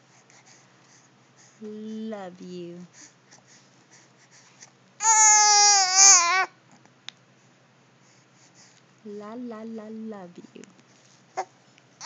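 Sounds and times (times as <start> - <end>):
baby cooing: 5.0 - 6.5.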